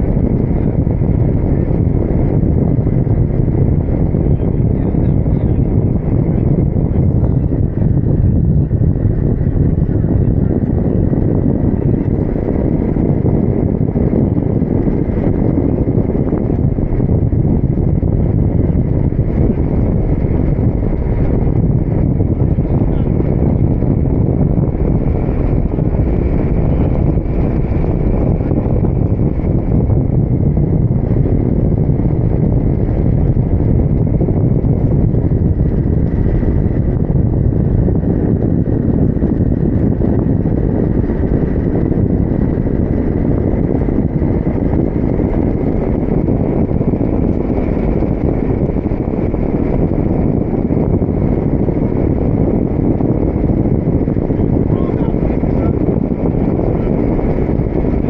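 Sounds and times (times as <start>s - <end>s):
wind rushing over microphone: 0.0s - 58.0s.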